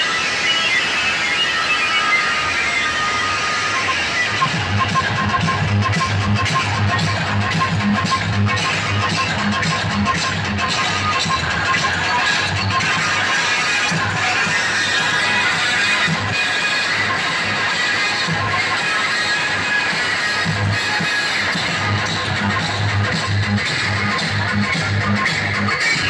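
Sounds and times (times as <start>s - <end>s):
loud dance music with bass beat: 0.0s - 26.0s.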